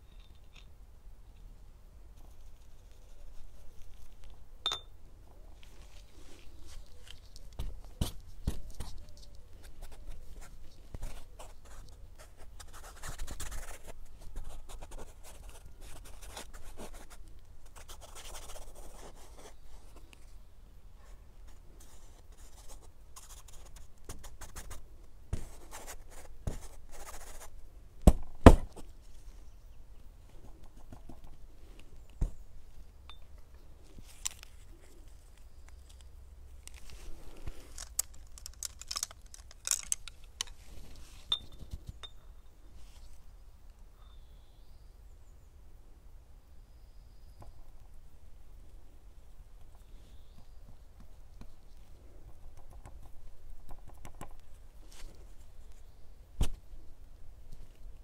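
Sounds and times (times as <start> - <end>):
sharp clink: 4.6 - 5.0.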